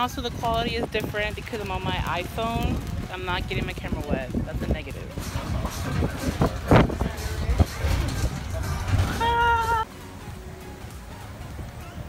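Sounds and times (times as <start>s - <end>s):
outdoor background noise: 0.0s - 12.0s
bus rumbling: 0.6s - 12.0s.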